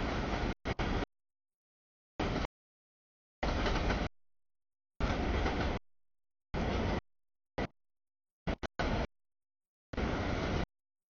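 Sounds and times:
train wheels rolling on rails: 0:02.2 - 0:02.5, 0:03.4 - 0:04.1, 0:05.0 - 0:05.8, 0:06.6 - 0:07.0, 0:10.0 - 0:10.7.

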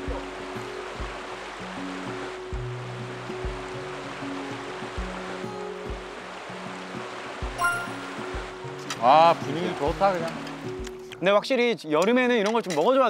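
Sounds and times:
river rushing over rocks: 0:00.0 - 0:10.7
soft background music: 0:00.0 - 0:13.0.

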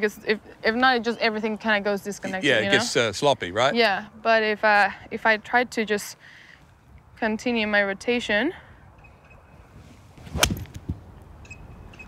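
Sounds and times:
golf club striking ball: 0:10.3 - 0:10.8.

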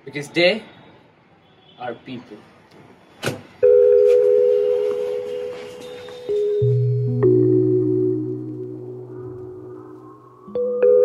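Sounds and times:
steady electronic tone: 0:03.6 - 0:11.0.

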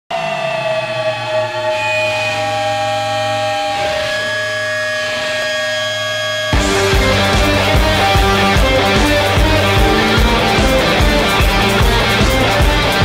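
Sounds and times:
low drone: 0:00.1 - 0:13.0
synthesizer pad: 0:00.1 - 0:13.0.

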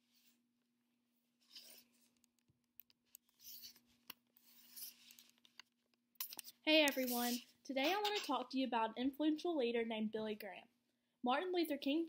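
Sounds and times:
camera handling rubbing and clicks: 0:01.6 - 0:08.4.

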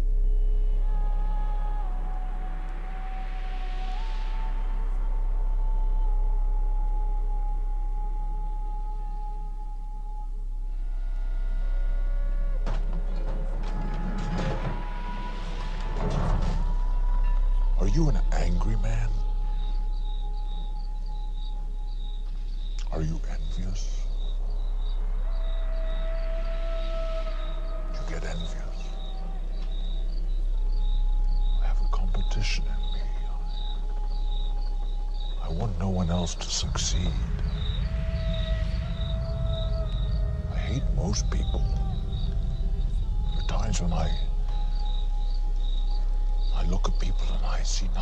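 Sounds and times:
cricket-like chirping: 0:00.0 - 0:48.0
deep low drone: 0:00.0 - 0:48.0
deep sub-bass: 0:00.0 - 0:48.0.

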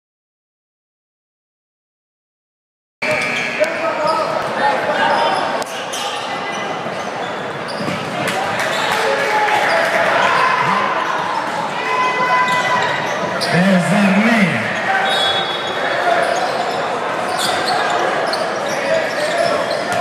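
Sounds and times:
sneaker squeaks: 0:03.0 - 0:08.1, 0:15.1 - 0:20.0
scattered voices: 0:10.5 - 0:11.1, 0:13.4 - 0:15.0.

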